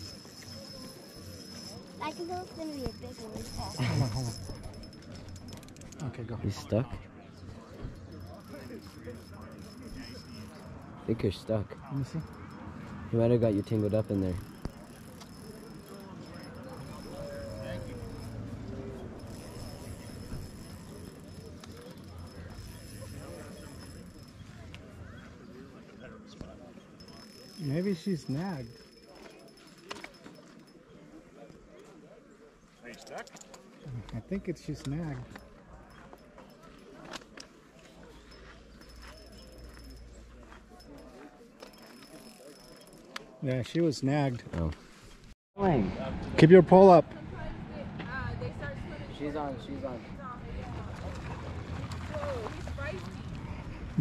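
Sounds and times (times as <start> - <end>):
distant people talking: 0.0 - 44.6, 45.6 - 54.0
faint distant voices: 0.0 - 44.7
outdoor background noise: 0.0 - 54.0.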